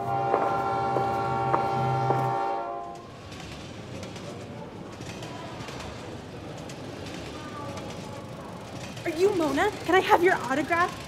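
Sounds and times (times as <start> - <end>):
train horn chord: 0.0 - 3.1
station bustle: 0.0 - 11.0.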